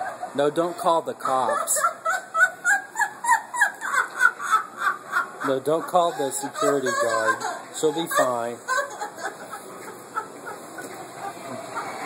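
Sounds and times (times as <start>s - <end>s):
woman cackling laughter: 1.2s - 12.0s.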